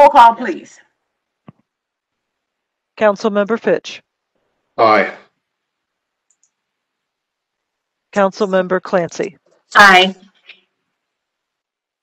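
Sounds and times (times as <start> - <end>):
person saying a word: 4.8 - 5.2
faint ticks: 6.1 - 6.8.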